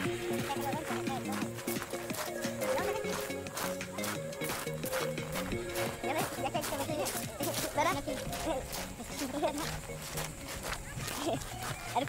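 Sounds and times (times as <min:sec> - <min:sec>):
footsteps on pebbles: 0:00.0 - 0:12.0
sped up squeaky voices: 0:00.0 - 0:12.0.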